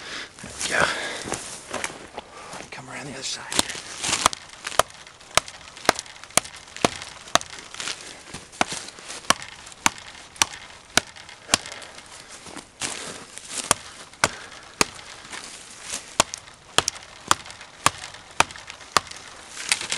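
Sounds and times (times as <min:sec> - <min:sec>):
knife chopping dry wood: 0:03.5 - 0:19.9.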